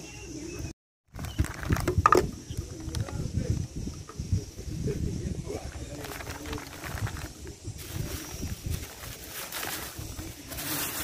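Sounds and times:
paper bags crinkling: 0:01.1 - 0:02.0, 0:05.8 - 0:11.0.

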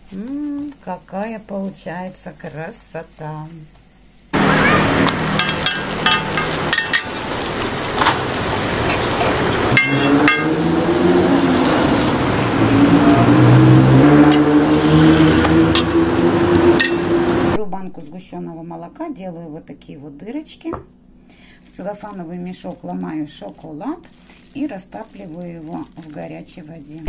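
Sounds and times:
loud busy noise: 0:04.4 - 0:17.6
metal spatula scraping griddle: 0:08.9 - 0:11.0, 0:14.2 - 0:17.4.

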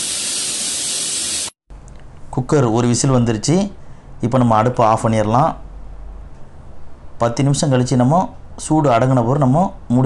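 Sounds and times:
pressure cooker steam hissing: 0:00.0 - 0:01.6.

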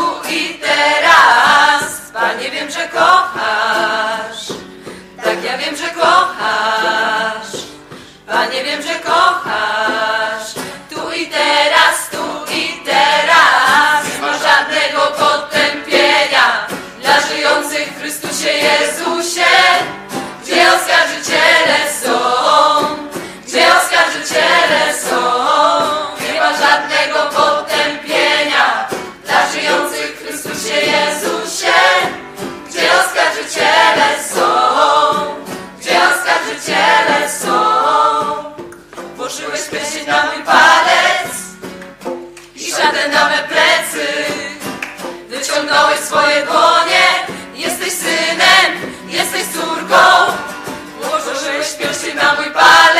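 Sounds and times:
group singing religious song: 0:00.0 - 0:41.6, 0:42.5 - 0:52.9.

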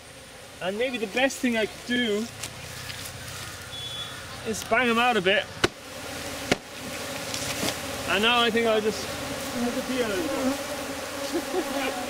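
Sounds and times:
bees humming: 0:00.0 - 0:12.0
knocks on hollow log: 0:05.6 - 0:05.8.

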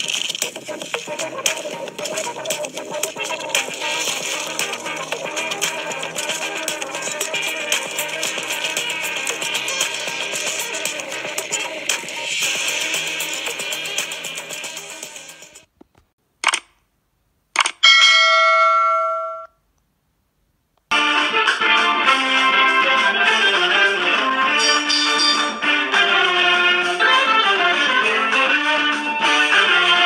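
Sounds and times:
bright multi-tone chime: 0:17.8 - 0:19.5, 0:24.6 - 0:25.6.

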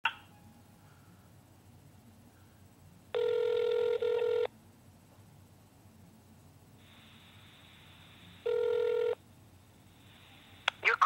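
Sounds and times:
telephone ringback tone: 0:03.1 - 0:04.5, 0:08.4 - 0:09.2.

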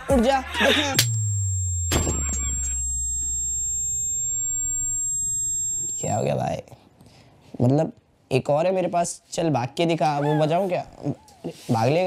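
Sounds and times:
high-pitched electronic whine: 0:00.9 - 0:06.2.

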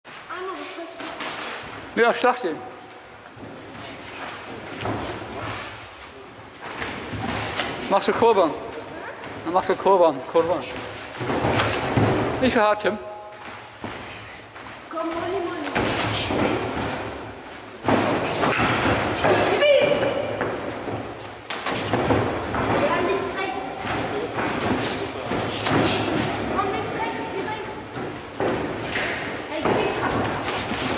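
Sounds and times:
punches and kicks thudding: 0:15.1 - 0:27.0.

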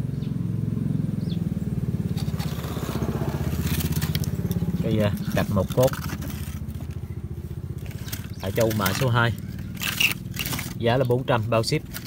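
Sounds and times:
small engine idling: 0:00.0 - 0:12.0.

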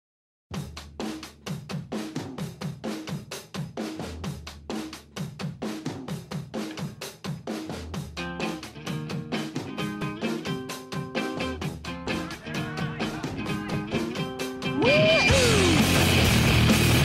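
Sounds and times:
drum kit playing steady beat: 0:00.5 - 0:17.0
other instruments: 0:00.6 - 0:17.0.

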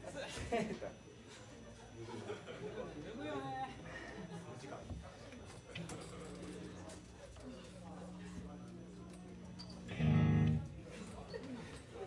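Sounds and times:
faint talk: 0:00.0 - 0:12.0
electric guitar chord: 0:09.8 - 0:10.8.

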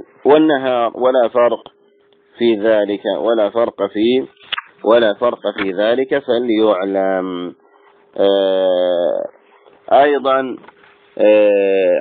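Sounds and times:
man's drawn-out hesitation sound: 0:08.2 - 0:10.6.

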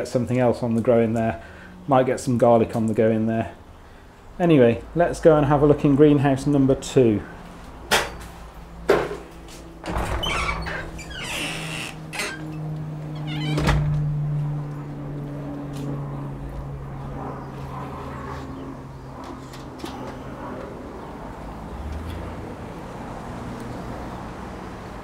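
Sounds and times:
steady low hum: 0:11.9 - 0:23.2.

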